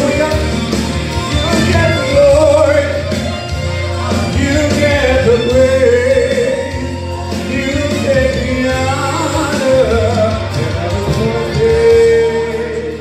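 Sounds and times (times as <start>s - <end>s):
backing music: 0.0s - 13.0s
man singing into microphone: 0.0s - 13.0s.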